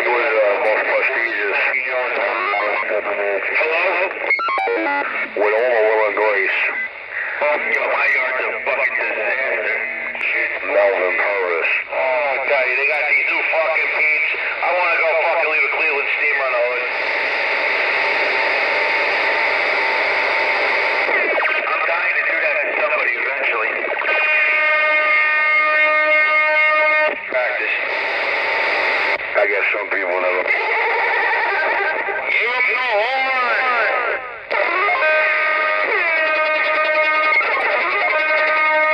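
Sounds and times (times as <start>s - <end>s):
voice over radio: 0.0s - 19.4s, 21.0s - 28.4s, 29.2s - 38.9s
distorted guitar music over radio: 0.0s - 38.9s.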